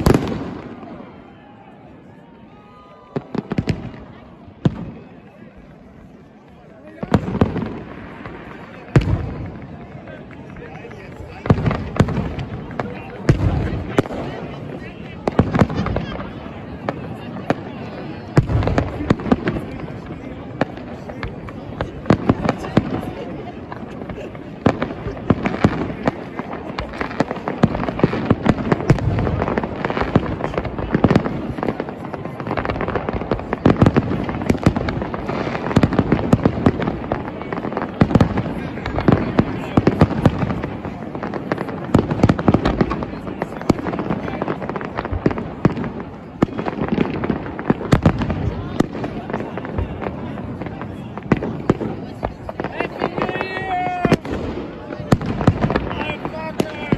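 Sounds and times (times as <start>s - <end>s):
fireworks bangs and crackles: 0.0s - 56.9s.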